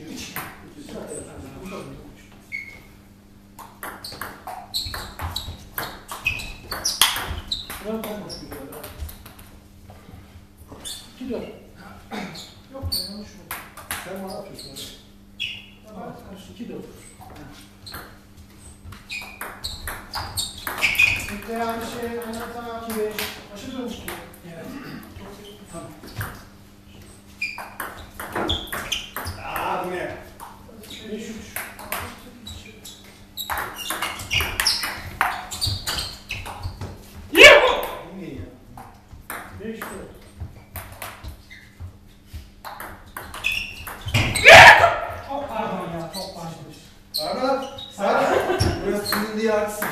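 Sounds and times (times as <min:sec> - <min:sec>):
loud shouts: 0:37.3 - 0:38.0, 0:44.4 - 0:45.2
people talking: 0:45.3 - 0:49.9.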